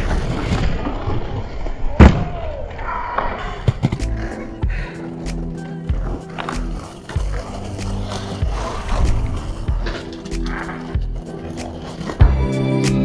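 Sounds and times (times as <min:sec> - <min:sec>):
skate wheels rolling on stone: 0:00.0 - 0:13.0
music with pulsing bass: 0:04.0 - 0:13.0.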